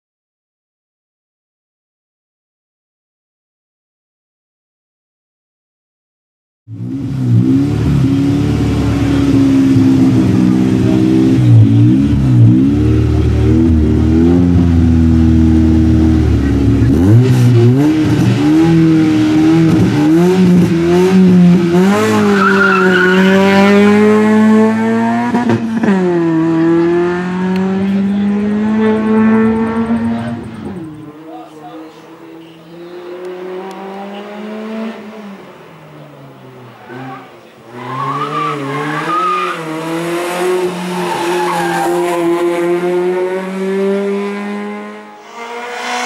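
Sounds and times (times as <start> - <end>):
race car engine revving: 6.7 - 46.0.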